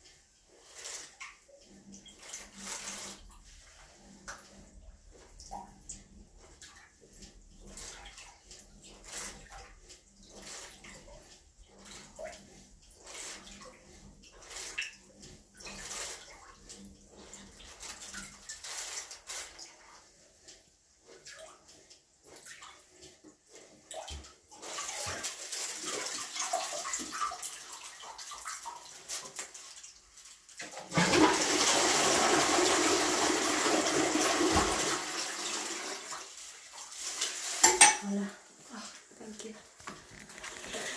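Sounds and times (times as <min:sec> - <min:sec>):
water splashing in toilet bowl: 0:00.0 - 0:38.0
toilet flushing: 0:00.0 - 0:39.0, 0:40.1 - 0:40.9.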